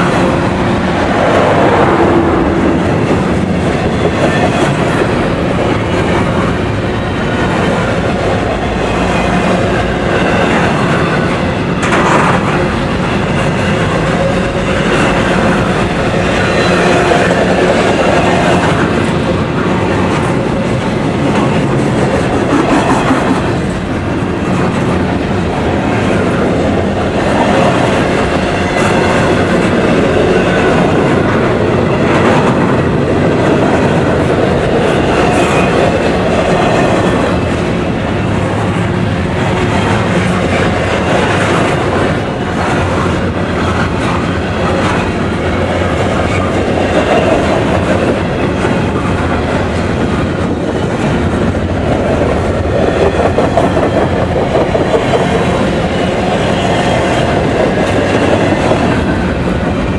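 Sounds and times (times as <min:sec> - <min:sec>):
steel wheels rumbling on rail: 0:00.0 - 0:59.9.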